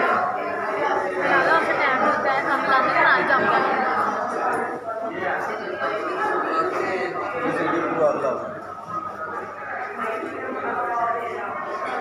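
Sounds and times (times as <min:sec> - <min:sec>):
chatter of people talking: 0:00.0 - 0:12.0.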